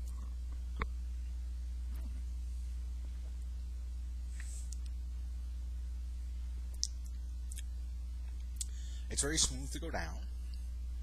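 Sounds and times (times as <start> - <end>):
low electrical hum: 0.0 - 11.0
faint ticks: 4.3 - 5.0, 6.7 - 8.8.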